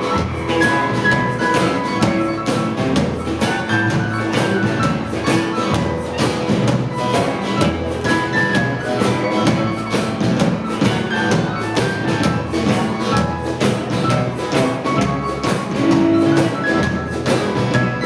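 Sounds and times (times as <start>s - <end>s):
acoustic and electric guitars: 0.0s - 18.0s
drum kit: 0.0s - 18.0s
upright double bass: 0.0s - 18.0s.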